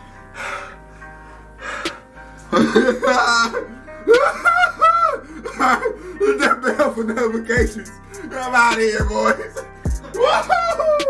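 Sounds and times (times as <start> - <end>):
background music with held tones: 0.0 - 11.0
loud wavering wordless vocal: 7.4 - 11.0.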